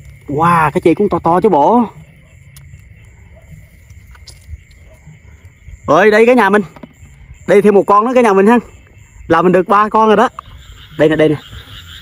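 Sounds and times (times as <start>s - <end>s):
night insects droning: 0.0s - 12.0s.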